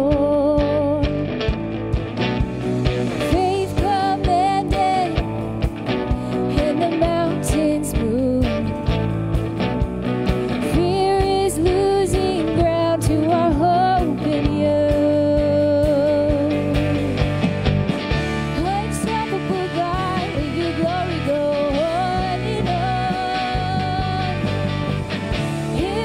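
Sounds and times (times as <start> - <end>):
woman singing: 0.0 - 1.2, 3.2 - 5.4, 6.1 - 8.8, 10.6 - 17.2, 18.5 - 24.7, 25.6 - 26.0
electric guitar: 0.0 - 26.0
keyboard: 0.0 - 26.0
steady drum beat: 1.0 - 26.0.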